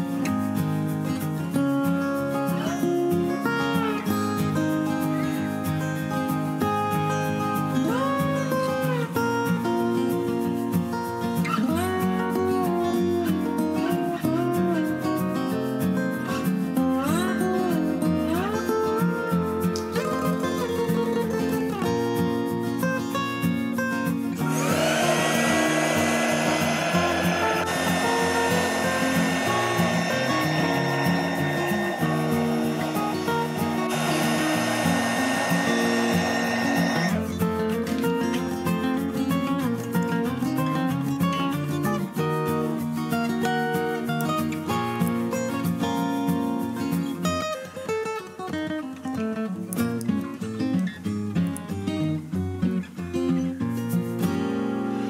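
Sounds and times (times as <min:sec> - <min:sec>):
acoustic guitar music: 0:00.0 - 0:55.0
heat gun blowing air: 0:24.4 - 0:37.7.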